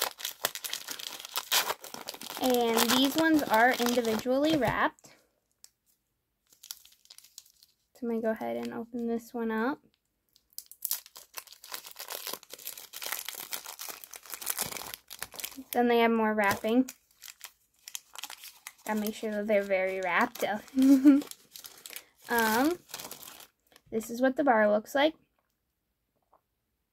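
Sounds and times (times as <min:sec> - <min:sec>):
plastic wrapper crinkling: 0:00.0 - 0:09.0, 0:10.0 - 0:23.9.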